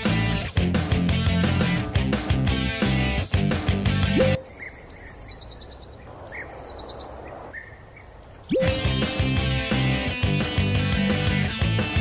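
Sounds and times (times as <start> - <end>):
rock music with electric guitar: 0.0 - 4.4, 8.6 - 12.0
birds chirping in trills: 4.1 - 9.7.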